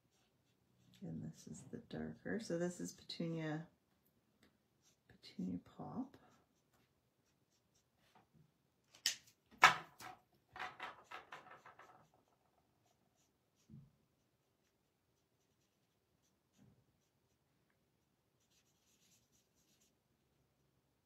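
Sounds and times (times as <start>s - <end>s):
marker scratching on cardstock: 18.4s - 19.9s.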